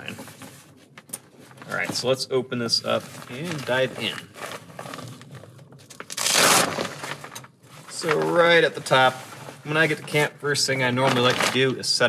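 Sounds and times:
stiff fabric crinkling and rustling: 0.0s - 12.0s.

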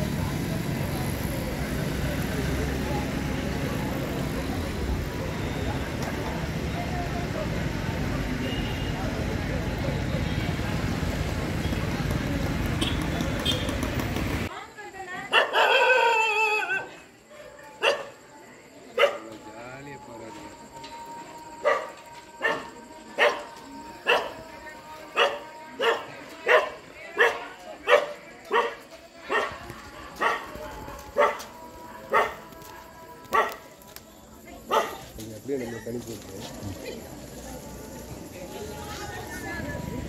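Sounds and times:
dog barking: 15.3s - 16.1s, 17.4s - 18.2s, 19.0s - 19.3s, 21.6s - 24.4s, 25.2s - 29.6s, 30.2s - 30.5s, 31.2s - 31.5s, 32.1s - 32.4s, 33.3s - 33.6s, 34.7s - 35.1s.

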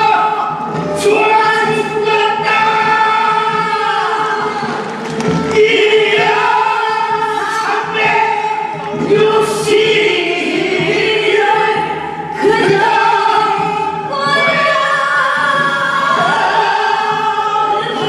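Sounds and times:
group singing long held notes: 0.0s - 18.0s.

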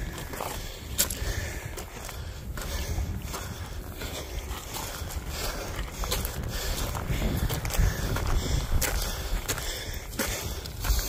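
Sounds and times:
footsteps crunching on gravel: 0.0s - 11.0s
low rumble on microphone: 0.0s - 11.0s.

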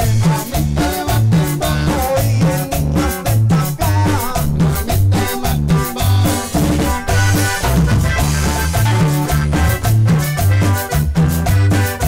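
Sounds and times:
accordion: 0.0s - 12.0s
live band playing: 0.0s - 12.0s.

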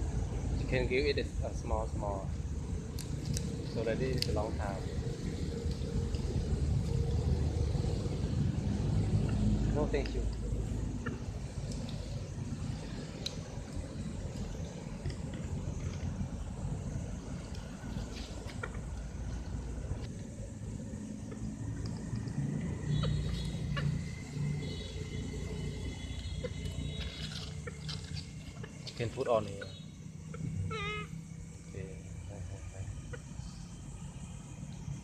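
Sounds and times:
low outdoor background rumble: 0.0s - 35.0s.

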